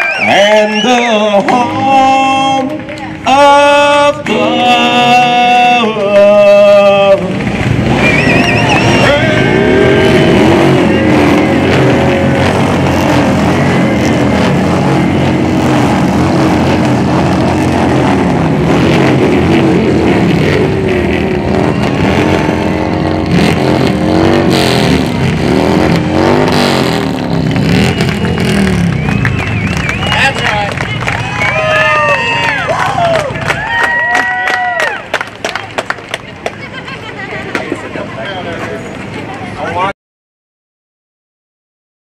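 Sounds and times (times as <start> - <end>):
crowd cheering and shouting: 0.0 - 3.5, 7.8 - 16.6, 27.3 - 38.0
vehicle engines revving: 0.0 - 39.9
anthem music: 8.8 - 31.3.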